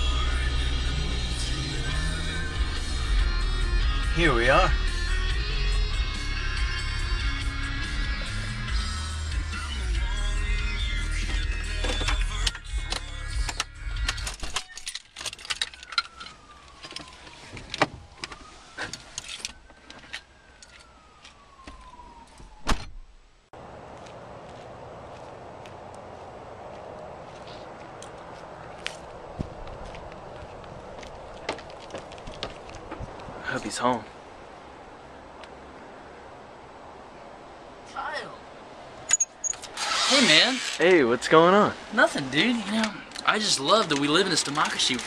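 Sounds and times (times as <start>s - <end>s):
car stereo music: 0.0s - 14.4s
slow squeak: 39.1s - 40.3s.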